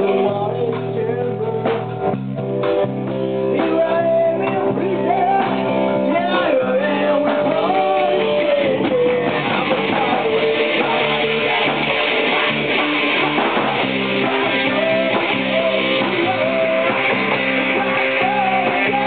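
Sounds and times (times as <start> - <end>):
man singing: 0.0 - 2.2, 3.5 - 11.8, 14.0 - 19.0
drums: 0.0 - 19.0
electric guitar: 0.0 - 19.0.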